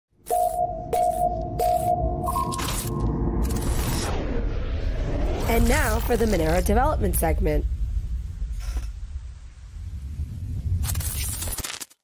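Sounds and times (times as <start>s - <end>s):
ping-like electronic pulses: 0.2s - 3.9s
low rumble: 0.5s - 11.4s.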